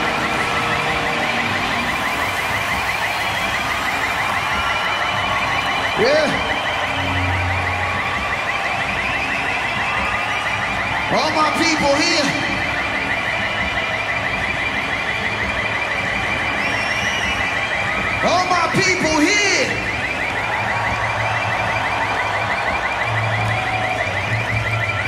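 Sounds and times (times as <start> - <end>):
crowd cheering and shouting: 0.0 - 25.0.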